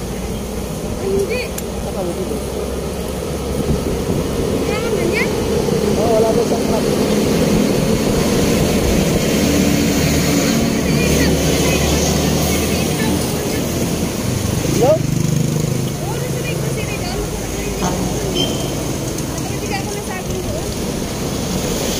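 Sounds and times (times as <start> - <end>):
street traffic: 0.0 - 21.9.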